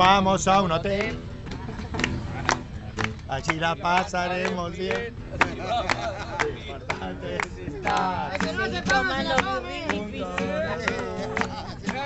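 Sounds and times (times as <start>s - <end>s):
people talking: 2.2s - 12.0s.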